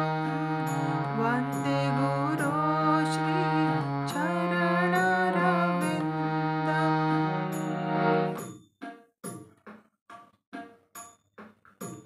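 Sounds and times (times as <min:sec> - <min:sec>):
harmonium playing: 0:00.0 - 0:08.4.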